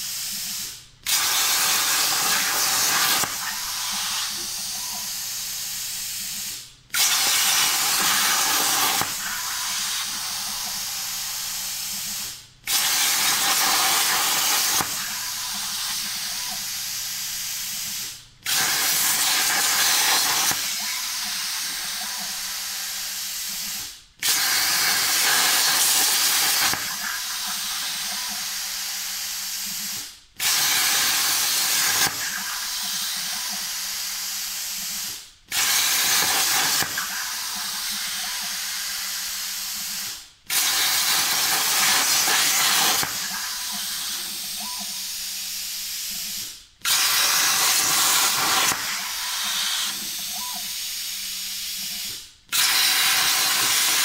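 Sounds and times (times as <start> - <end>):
plasma cutter torch hissing: 0.0 - 54.0.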